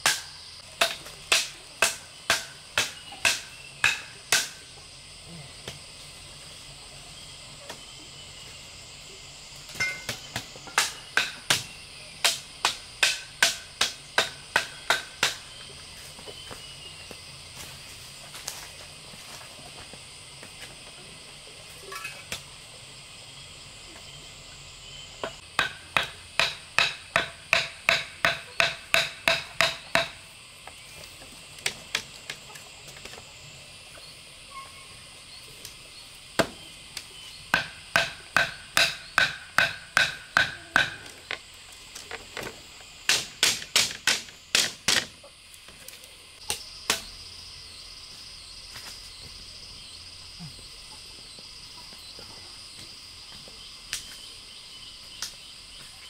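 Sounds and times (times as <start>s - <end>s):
wooden club pounding bamboo stakes: 0.0s - 4.7s, 9.8s - 15.6s, 25.2s - 30.2s, 37.5s - 41.4s, 43.0s - 45.2s
crickets trilling: 0.0s - 56.0s.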